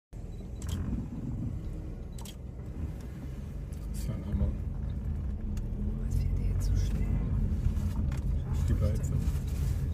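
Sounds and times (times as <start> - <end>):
vehicle engine idling rumble: 0.2 - 9.9
sharp clicks: 2.0 - 3.1.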